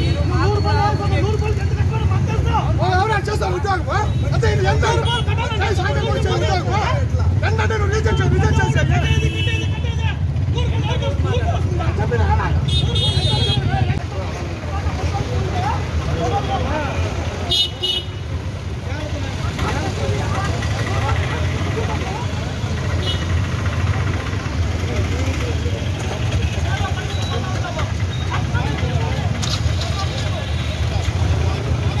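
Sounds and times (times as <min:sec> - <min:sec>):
crowd talking: 0:00.0 - 0:32.0
motorbike engines rumbling: 0:00.0 - 0:32.0.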